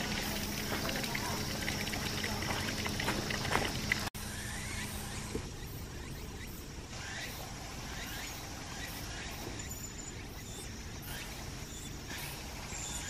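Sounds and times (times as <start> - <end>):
spring water trickling: 0.0 - 4.2.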